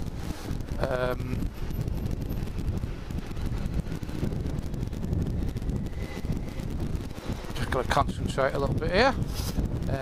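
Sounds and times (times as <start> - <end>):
motorcycle engine and tyres: 0.0 - 10.0
wind buffeting microphone: 0.0 - 10.0.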